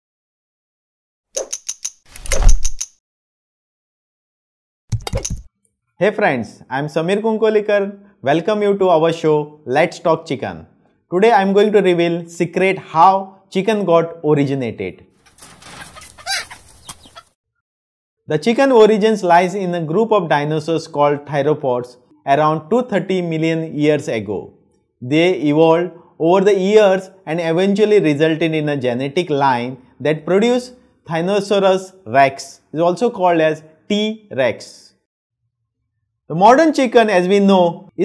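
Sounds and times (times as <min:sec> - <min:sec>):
sharp mechanical clicks: 0:01.4 - 0:03.0
chicken clucking: 0:15.7 - 0:17.3.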